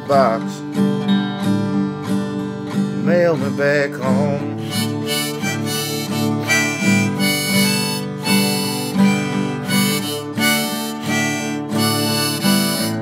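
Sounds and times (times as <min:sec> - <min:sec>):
strummed acoustic guitar: 0:00.0 - 0:13.0
harmonica melody: 0:04.2 - 0:13.0.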